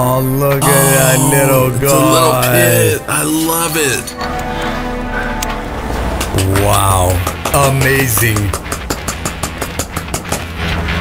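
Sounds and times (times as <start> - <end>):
low sustained hum: 0.1 - 11.0
fast even ticking: 6.3 - 10.4.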